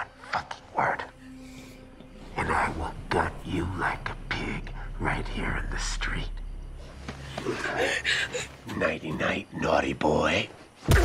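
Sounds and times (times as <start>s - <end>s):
person whispering: 0.0s - 6.4s
low drone: 0.0s - 9.1s.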